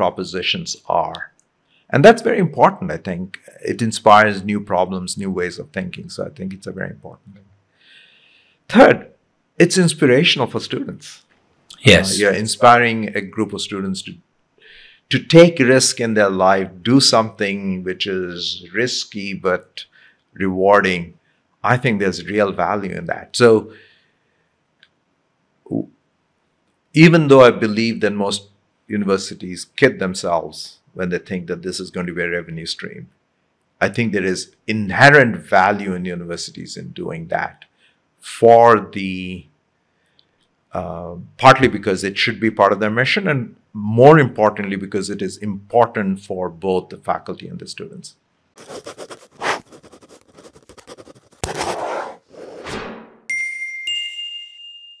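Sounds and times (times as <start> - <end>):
short low vocal mm: 11.7 - 12.6
bright chime dings: 53.3 - 55.0.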